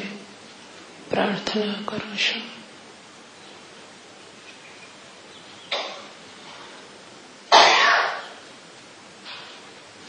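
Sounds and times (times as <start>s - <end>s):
woman coughing: 7.5s - 8.2s.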